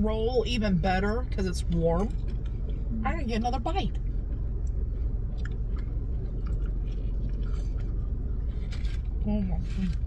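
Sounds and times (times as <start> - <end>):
low car cabin rumble: 0.0 - 10.0
people chewing sandwiches: 4.0 - 10.0.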